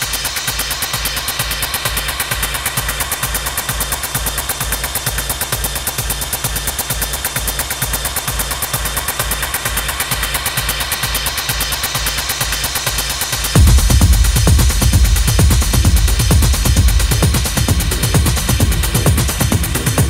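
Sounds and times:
pulsing bass: 13.5s - 20.0s
stuttering percussive hits: 13.6s - 20.0s.

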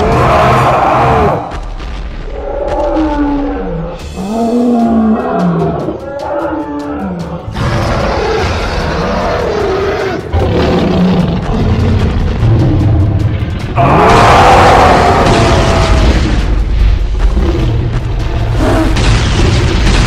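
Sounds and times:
cartoon monster roaring: 0.0s - 1.5s, 13.8s - 16.3s
background music: 0.0s - 20.0s.

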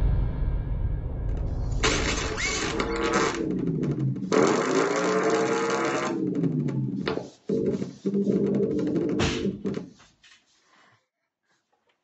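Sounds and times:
low electronic tones bending in pitch: 1.3s - 9.2s.

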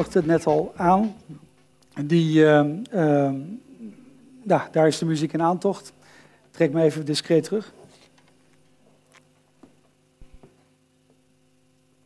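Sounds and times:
faint electrical hum: 0.0s - 12.0s.

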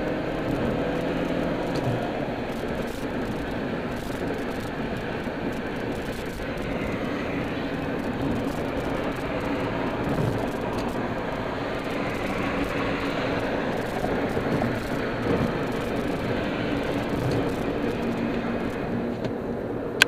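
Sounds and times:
car road noise: 0.0s - 20.0s.

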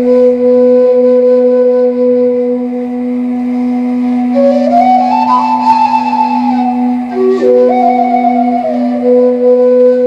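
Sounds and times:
end-blown flute melody: 0.0s - 10.0s
steady low drone: 0.0s - 10.0s.

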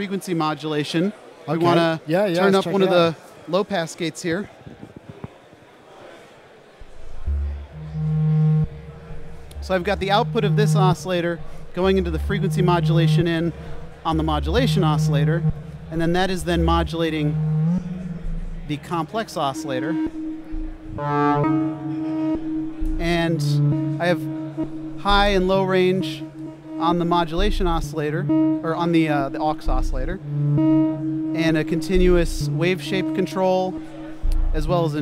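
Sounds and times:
low buzzy synthesizer drone: 6.8s - 35.0s.

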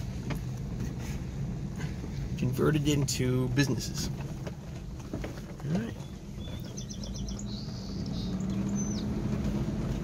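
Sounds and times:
car engine and road noise: 0.0s - 10.0s
bird chirping: 5.9s - 9.3s.

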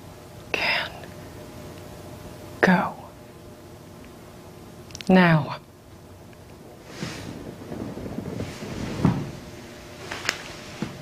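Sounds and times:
clothing and upholstery rustling: 6.8s - 11.0s
soft thump: 8.4s - 9.4s.

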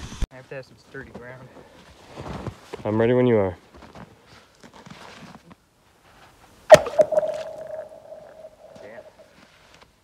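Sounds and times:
chunk hitting thin ice: 6.7s - 9.0s
ice ringing with eerie tone: 6.7s - 9.3s.

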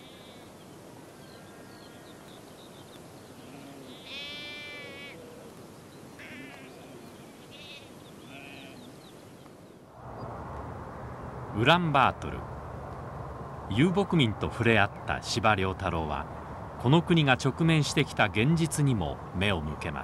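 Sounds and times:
sheep bleating: 0.0s - 0.5s, 3.4s - 5.2s, 6.2s - 8.9s
open-air background: 0.0s - 20.0s.

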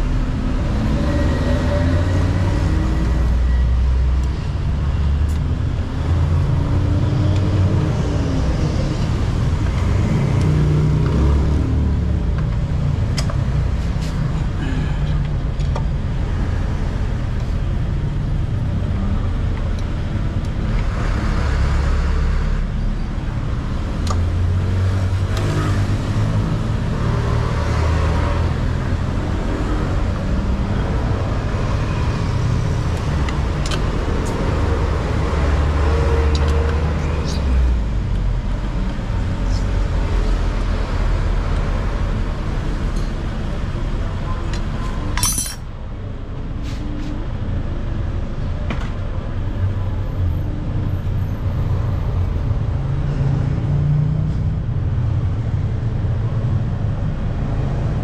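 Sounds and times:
vehicle engine and traffic noise: 0.0s - 58.0s
wrench clicking on bolts: 45.2s - 45.6s.

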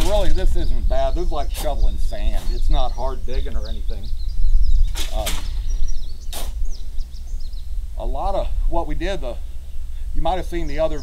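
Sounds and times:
shovel scraping sandy soil: 1.4s - 2.8s, 6.3s - 6.6s.

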